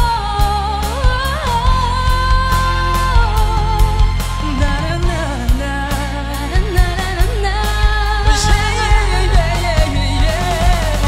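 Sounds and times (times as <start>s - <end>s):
man and woman singing duet: 0.0s - 11.0s
pop band playing slow song: 0.0s - 11.0s.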